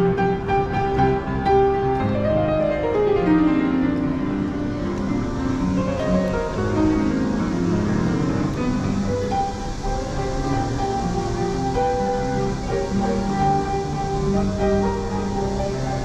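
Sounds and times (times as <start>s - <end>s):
upright piano melody: 0.0s - 16.0s.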